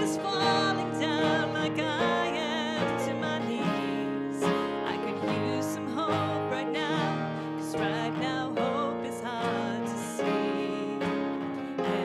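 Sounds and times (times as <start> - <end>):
keyboard: 0.0 - 12.0
strummed acoustic guitar: 0.0 - 12.0.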